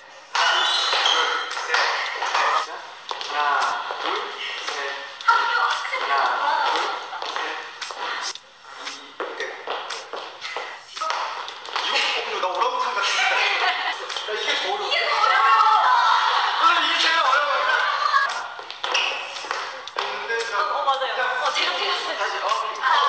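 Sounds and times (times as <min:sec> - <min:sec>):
people talking and calling out: 0:00.0 - 0:23.0
sharp taps and claps: 0:06.7 - 0:12.2, 0:18.2 - 0:20.6.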